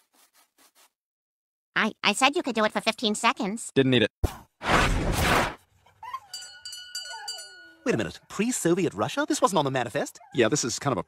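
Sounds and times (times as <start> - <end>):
dogs whining: 5.8 - 7.9, 10.1 - 10.6
bell ringing: 6.3 - 8.0
man talking: 7.8 - 11.0.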